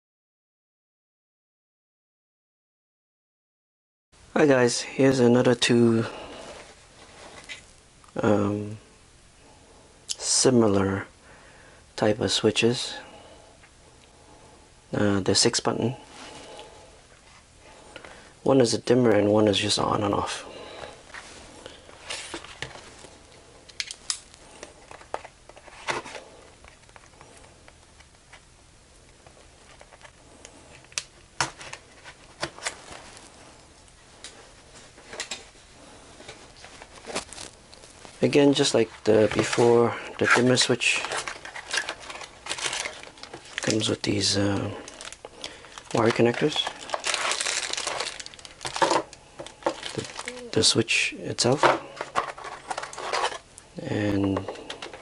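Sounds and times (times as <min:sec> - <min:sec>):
packaging rustling: 0:30.8 - 0:35.6, 0:36.2 - 0:50.8, 0:51.5 - 0:53.5.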